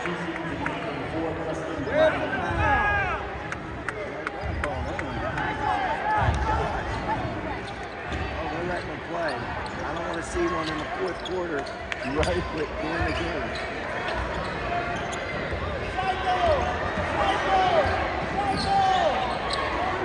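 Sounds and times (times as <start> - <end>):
spectators talking: 0.0 - 20.0.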